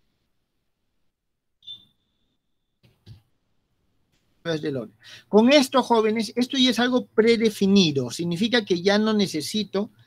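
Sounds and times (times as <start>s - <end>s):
high electronic beep: 1.6s - 2.2s.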